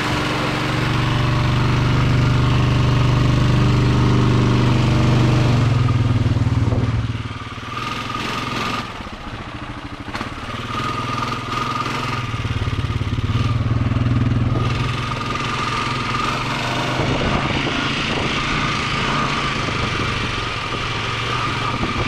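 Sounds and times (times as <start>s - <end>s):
atv engine running: 0.0s - 22.0s.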